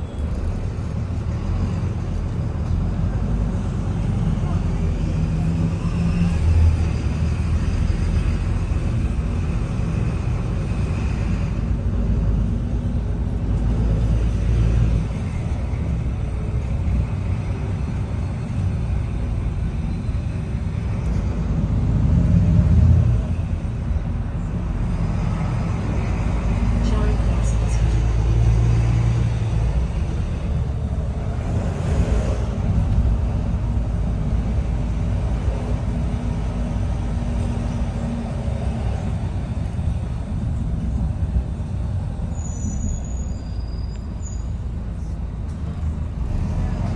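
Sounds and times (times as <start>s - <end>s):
bus diesel engine running: 0.0s - 46.9s.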